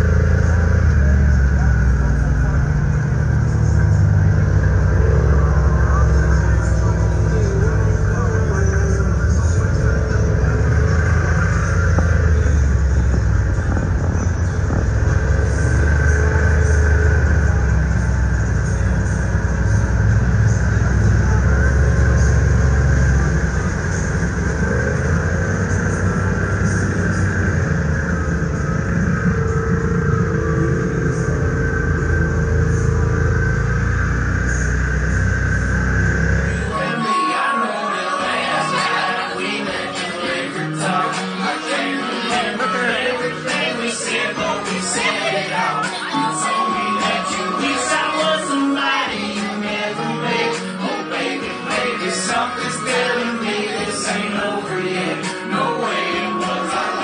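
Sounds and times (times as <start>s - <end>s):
engine low rumble: 0.0s - 37.0s, 38.2s - 57.0s
background music: 0.0s - 57.0s.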